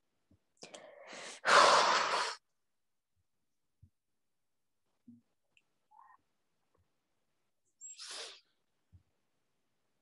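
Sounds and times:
person breathing out sharply: 0:00.7 - 0:02.4.

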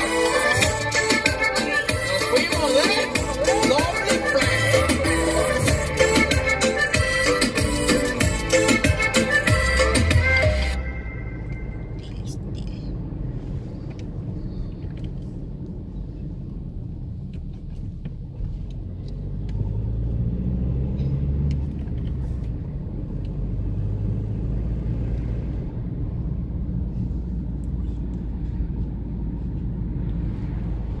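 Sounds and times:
car engine and road rumble: 0:00.0 - 0:31.0.

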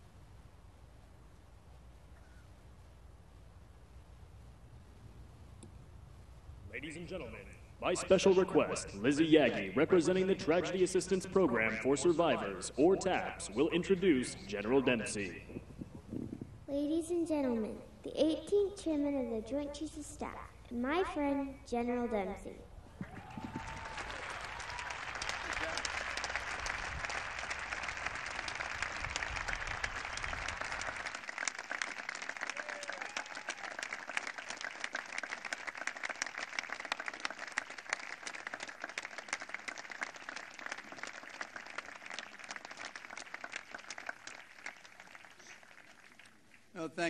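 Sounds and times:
crowd applauding: 0:23.0 - 0:46.6.

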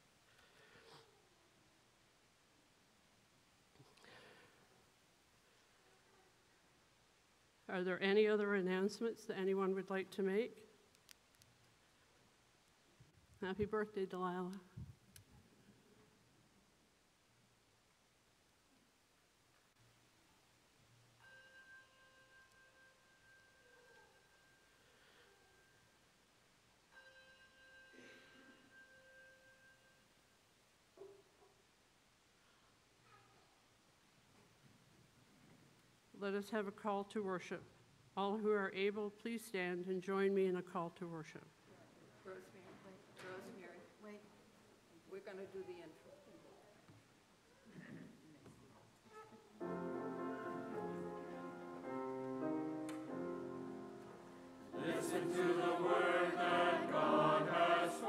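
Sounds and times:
faint high-pitched tone: 0:21.1 - 0:26.1, 0:26.9 - 0:30.4
grand piano chords: 0:49.6 - 0:58.0.

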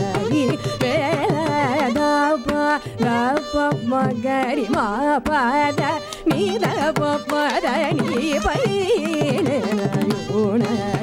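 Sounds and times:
violin: 0:00.0 - 0:11.0.

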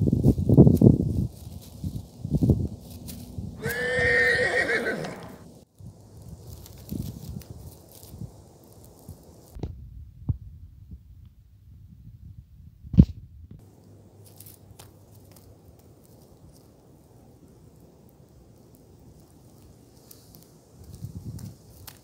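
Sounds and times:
faint outdoor air hiss: 0:00.0 - 0:22.0.

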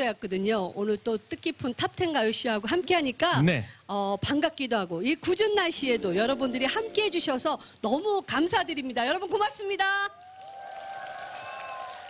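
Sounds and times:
audience applauding and cheering: 0:10.1 - 0:12.0.

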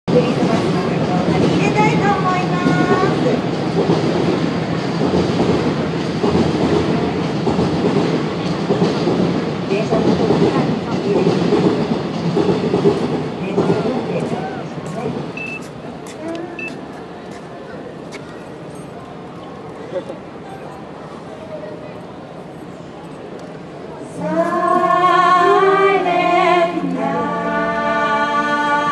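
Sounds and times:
voices: 0:00.1 - 0:03.9, 0:06.3 - 0:28.9
train wheels rumbling on track: 0:00.1 - 0:27.0.

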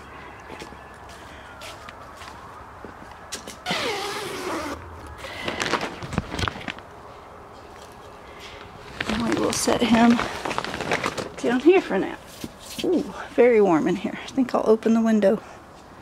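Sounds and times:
plastic sheeting rustling: 0:03.6 - 0:06.9, 0:08.8 - 0:12.8.

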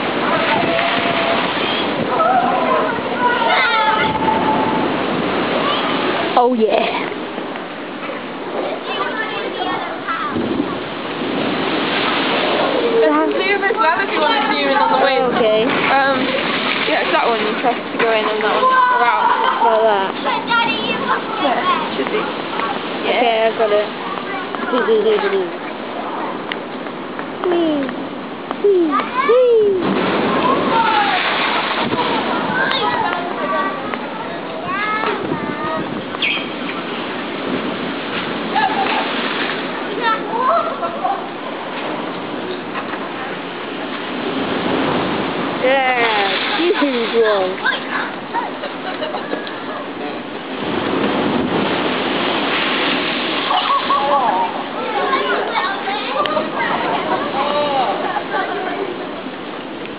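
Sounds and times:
faint voices: 0:00.0 - 0:44.6, 0:45.3 - 0:50.8, 0:51.5 - 0:59.9
surf washing against sea wall: 0:00.0 - 0:59.9.

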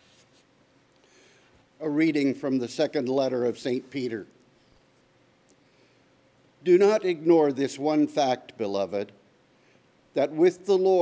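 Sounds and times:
man reading aloud: 0:01.8 - 0:04.4, 0:06.6 - 0:09.2, 0:10.1 - 0:11.0.

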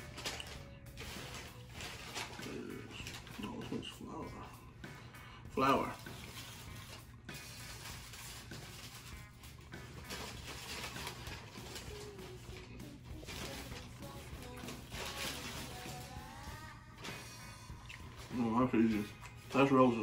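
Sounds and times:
quiet background music: 0:00.0 - 0:20.0.

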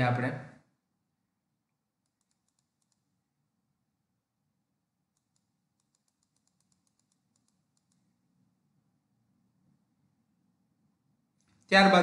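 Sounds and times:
computer mouse clicks: 0:02.0 - 0:03.2, 0:05.1 - 0:08.2.

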